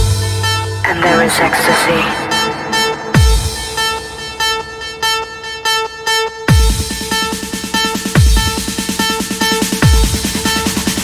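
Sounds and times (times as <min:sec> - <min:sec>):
horn-like synth stabs: 0:00.8 - 0:07.3
electronic dance music: 0:00.8 - 0:09.2.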